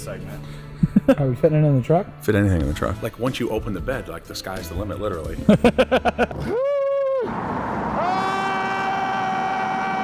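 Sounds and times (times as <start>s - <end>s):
traffic noise: 7.2s - 10.0s.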